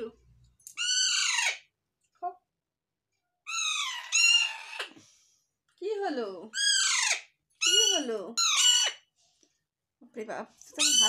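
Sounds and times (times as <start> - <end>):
parakeet calling: 0.8 - 1.6, 3.5 - 4.9, 6.5 - 9.1, 10.8 - 11.0.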